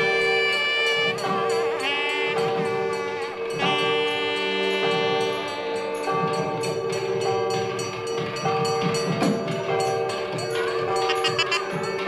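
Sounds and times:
percussion strokes: 0.0 - 12.0
reed pipe melody: 0.0 - 12.0
steady drone: 0.0 - 12.0.

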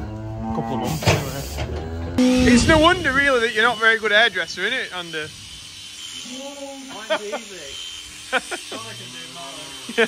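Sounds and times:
electric clippers buzzing: 2.2 - 10.0.

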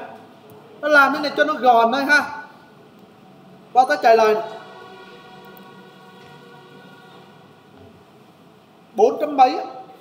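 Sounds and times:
faint hum: 0.0 - 10.0
low hiss: 0.0 - 10.0.

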